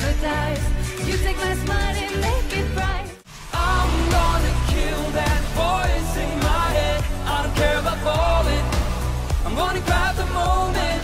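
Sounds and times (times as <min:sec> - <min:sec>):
woman singing pop song: 0:00.0 - 0:11.0
band with steady low beat: 0:03.6 - 0:11.0.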